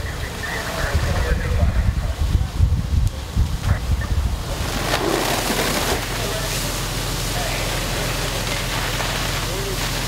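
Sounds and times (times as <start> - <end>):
wind buffeting microphone: 0.0 - 6.1
roar of burning roof: 0.0 - 10.0.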